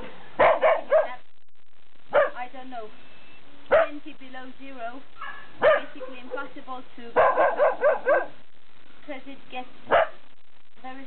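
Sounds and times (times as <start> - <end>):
dog barking: 0.4 - 1.2, 2.1 - 2.4, 3.7 - 4.0, 5.2 - 6.5, 7.2 - 8.4, 9.9 - 10.2.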